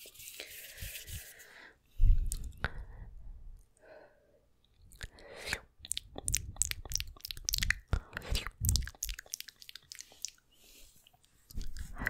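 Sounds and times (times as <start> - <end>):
wet mouth clicks and smacks: 2.3 - 2.6, 4.8 - 10.4, 11.0 - 12.0.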